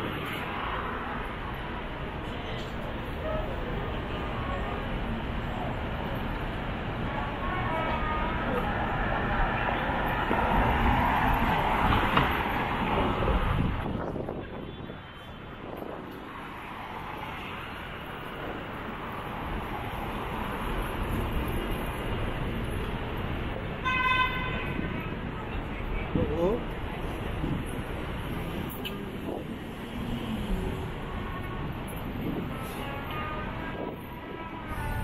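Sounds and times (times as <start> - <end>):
traffic rumble: 0.0 - 35.0
vehicles passing: 0.0 - 35.0
voices of passersby: 0.0 - 35.0.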